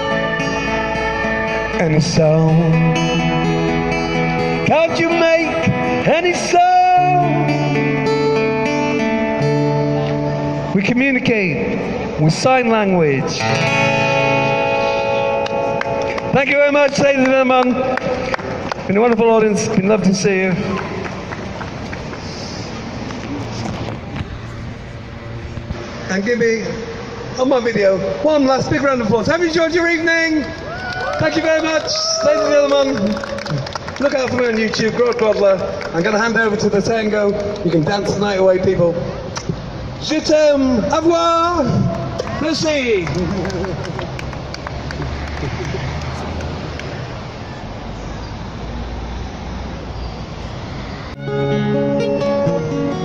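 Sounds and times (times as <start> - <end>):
street traffic: 0.0 - 53.0.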